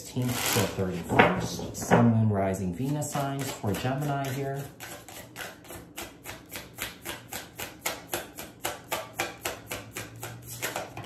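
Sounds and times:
cards being shuffled: 9.7s - 11.0s.

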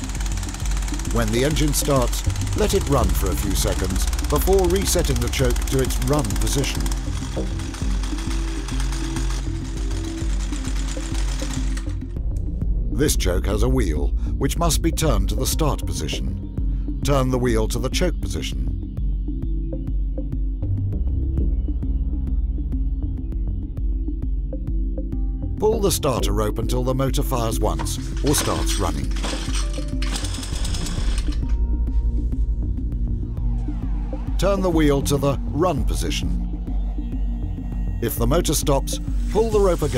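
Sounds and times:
two-stroke trimmer engine running: 0.0s - 12.0s, 27.8s - 31.5s
background music: 0.0s - 39.9s
starter rope pulled: 27.6s - 31.6s.

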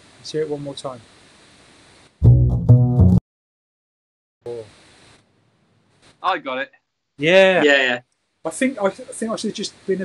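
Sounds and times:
double bass plucked pizzicato: 2.2s - 3.2s.

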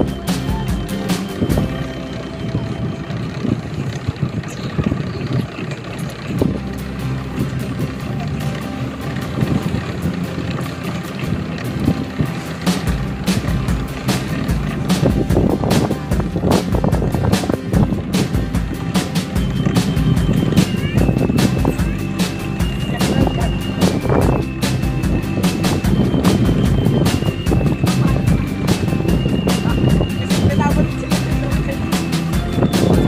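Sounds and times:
music playing: 0.0s - 4.0s, 5.9s - 33.0s
boat engine running: 0.0s - 33.0s.

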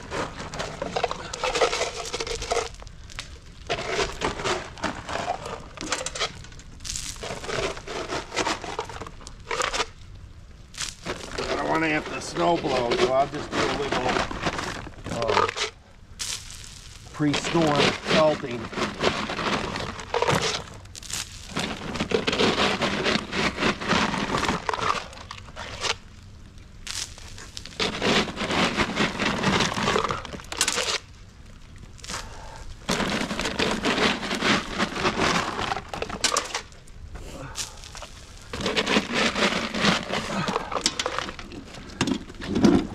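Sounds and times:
plastic bag crinkling: 0.0s - 10.0s, 10.7s - 42.9s
salt pellets pattering on concrete: 5.6s - 10.0s, 10.7s - 22.4s, 23.0s - 36.8s, 37.4s - 41.8s.

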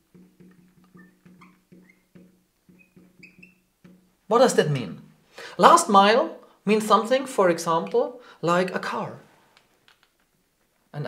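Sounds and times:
marker squeaking on glass: 0.0s - 4.2s.

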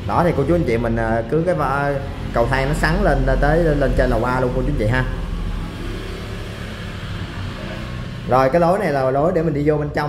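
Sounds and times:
low engine rumble of traffic: 0.0s - 10.0s.

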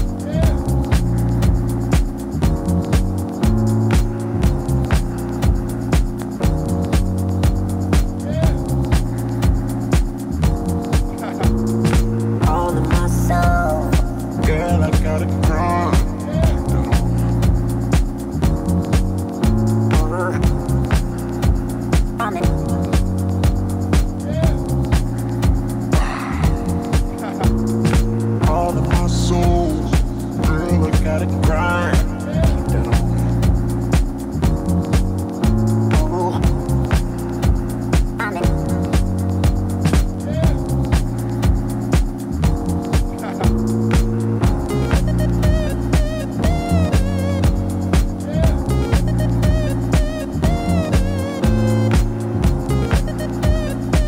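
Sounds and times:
jazzy house music: 0.0s - 54.0s.

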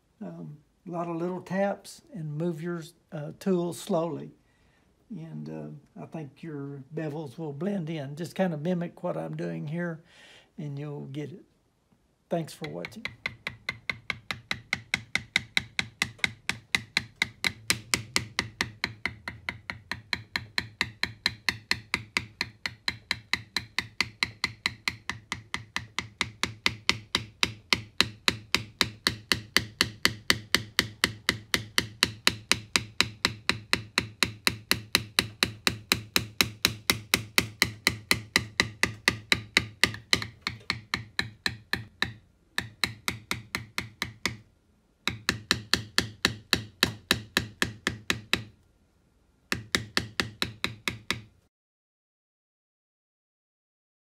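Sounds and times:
mallet tapping leather tool: 12.4s - 48.6s, 49.5s - 51.4s.

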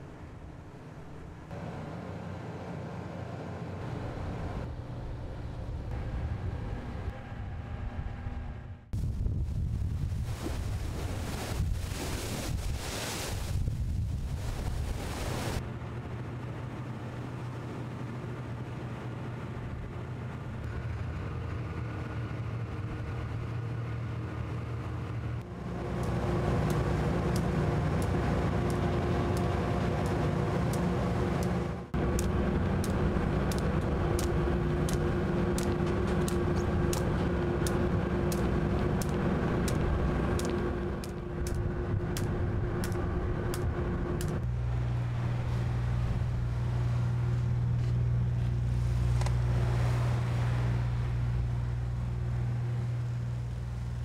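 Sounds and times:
ship engines droning: 0.0s - 9.0s, 15.0s - 54.0s
wind: 0.0s - 54.0s
sea noise: 9.0s - 24.8s, 25.4s - 54.0s
sharp clicks: 26.0s - 44.4s.

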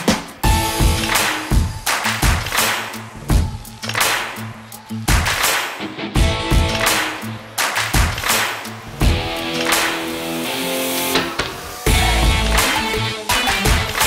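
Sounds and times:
electric guitar: 9.0s - 14.0s.

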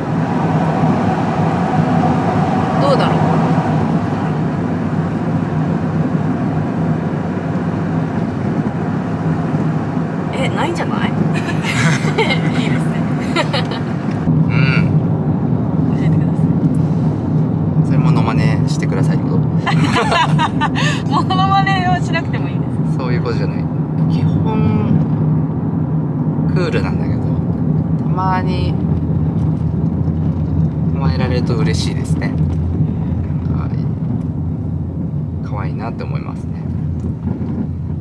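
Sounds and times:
road and engine noise in car: 0.0s - 38.0s.

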